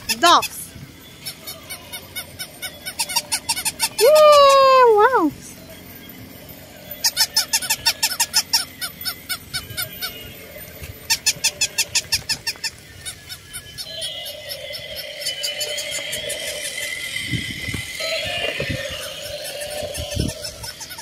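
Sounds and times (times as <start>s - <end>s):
toy electronic yaps: 0.0s - 21.0s
steady electronic whine: 4.9s - 21.0s.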